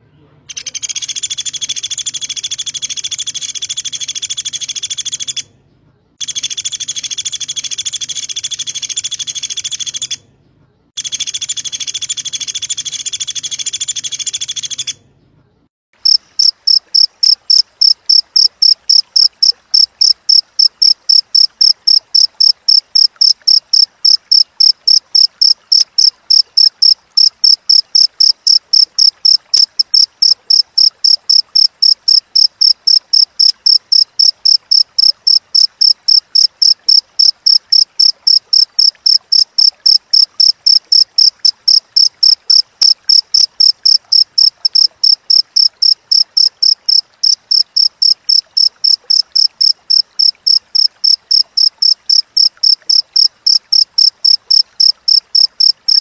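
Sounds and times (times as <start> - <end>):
cricket chirping: 16.0 - 56.0.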